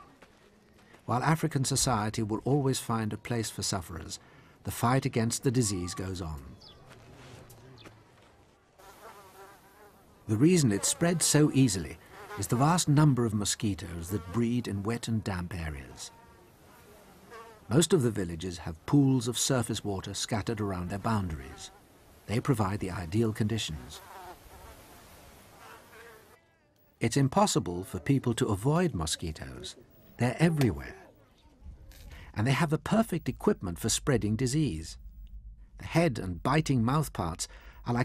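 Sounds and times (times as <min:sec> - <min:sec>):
flying insects buzzing: 0:08.8 - 0:13.0, 0:16.0 - 0:17.8, 0:23.7 - 0:26.4
low background hiss: 0:08.8 - 0:38.0.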